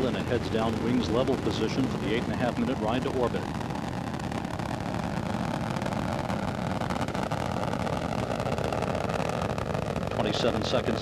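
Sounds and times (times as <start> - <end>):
rocket engines rumbling: 0.0 - 11.0.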